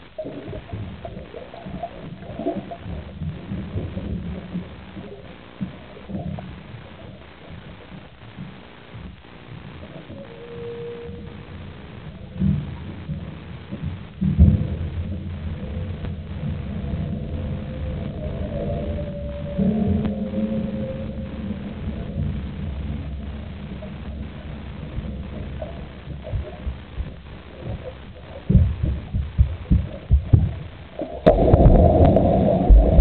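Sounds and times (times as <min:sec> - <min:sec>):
low underwater rumble: 0:00.0 - 0:33.0
faint wavering tones: 0:09.6 - 0:29.1
heavy underwater thumps: 0:12.2 - 0:33.0.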